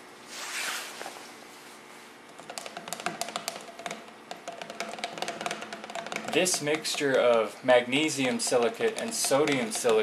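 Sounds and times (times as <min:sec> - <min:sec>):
rod stirring paste in bottle: 0:02.3 - 0:10.0
rod tapping plastic bottle: 0:02.3 - 0:10.0.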